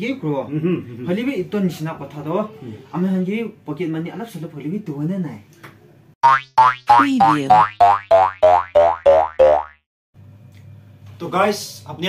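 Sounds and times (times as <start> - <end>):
cartoon boing sound effect: 6.2 - 9.8.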